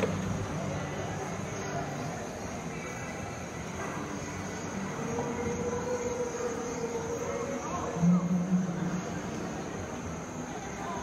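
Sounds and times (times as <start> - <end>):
faint distant voices: 0.0 - 11.0
faint high whine: 0.0 - 11.0.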